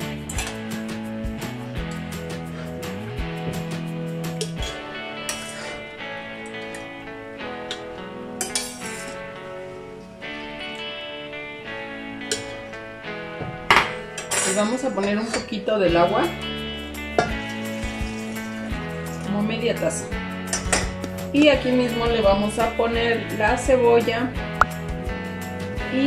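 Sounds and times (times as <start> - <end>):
background music: 0.0 - 26.0
metal spoon clinking: 7.7 - 9.2, 14.0 - 15.5.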